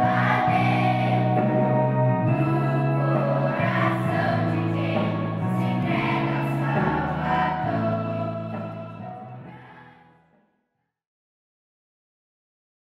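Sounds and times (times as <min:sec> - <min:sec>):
children's choir singing: 0:00.0 - 0:10.0.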